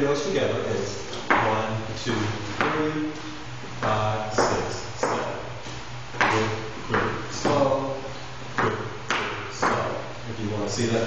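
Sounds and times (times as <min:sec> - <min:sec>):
man counting beats: 0:00.0 - 0:11.0.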